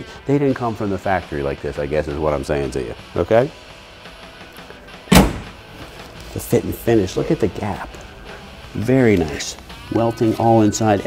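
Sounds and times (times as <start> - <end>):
steel door thudding shut: 5.1 - 5.6.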